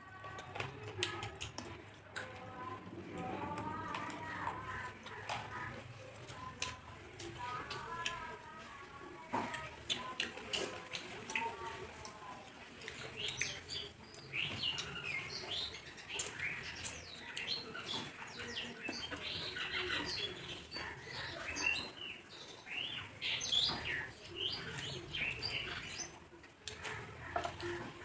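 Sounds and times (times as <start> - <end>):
chewing and lip-smacking: 0.2 - 8.3, 9.4 - 21.6.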